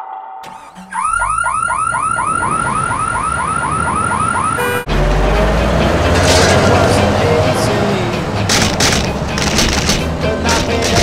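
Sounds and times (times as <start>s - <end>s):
car alarm siren chirping: 0.4s - 4.9s
loud low rumble: 1.9s - 8.5s.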